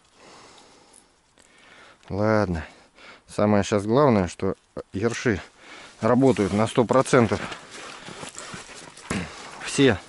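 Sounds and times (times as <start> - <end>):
soft breathing through the nose: 0.0 - 3.4, 5.4 - 10.0.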